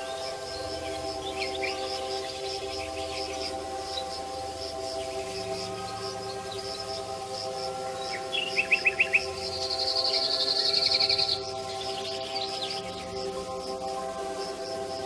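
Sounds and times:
bird chirping and trilling: 0.0s - 4.2s, 7.9s - 13.2s
soft background music: 0.0s - 15.0s.

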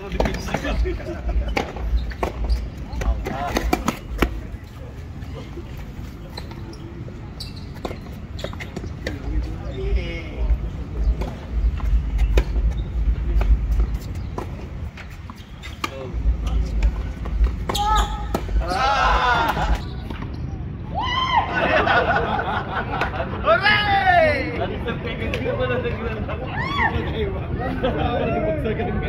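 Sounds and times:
voices calling out: 0.0s - 22.2s
tennis ball hit by rackets: 1.4s - 4.5s, 16.8s - 18.8s.

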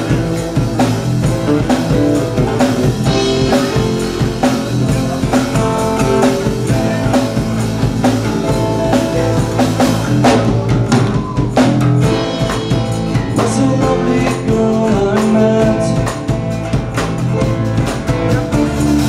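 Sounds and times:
drum kit: 0.0s - 19.0s.

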